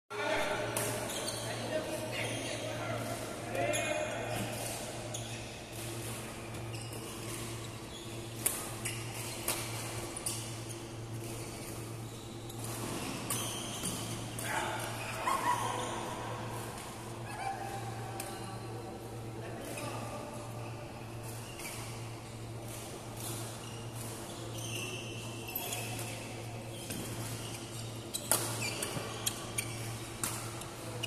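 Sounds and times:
sports shoes squeaking on court: 0:00.4 - 0:16.5, 0:19.6 - 0:31.0.

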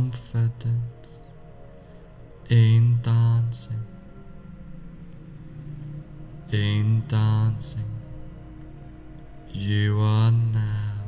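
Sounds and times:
man chanting a drawn-out word: 0:00.0 - 0:01.2, 0:02.4 - 0:04.0, 0:06.4 - 0:08.2, 0:09.5 - 0:11.0
soft calming background music: 0:00.0 - 0:11.0.

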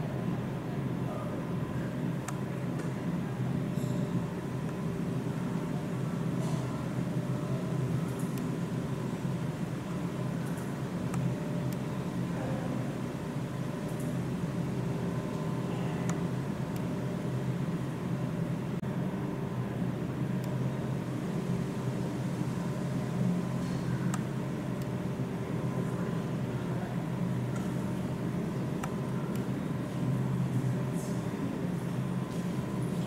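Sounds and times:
low mechanical hum: 0:00.0 - 0:33.0.

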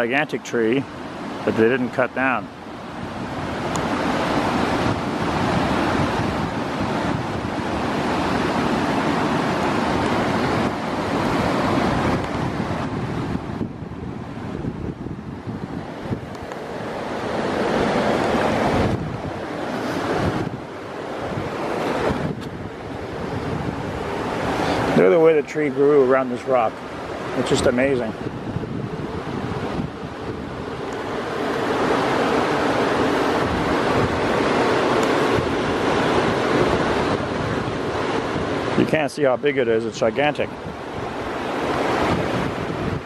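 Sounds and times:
loud steady rushing noise: 0:00.0 - 0:43.0.

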